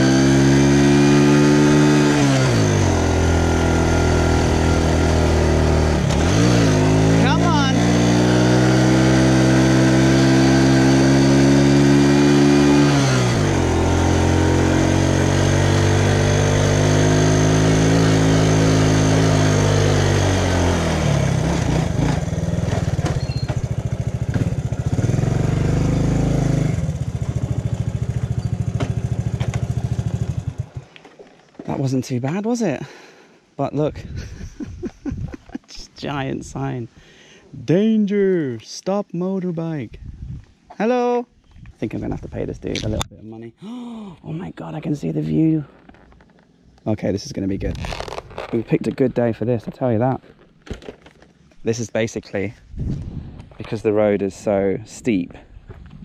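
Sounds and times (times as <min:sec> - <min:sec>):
motorbike engine pulling uphill: 0:00.0 - 0:31.4.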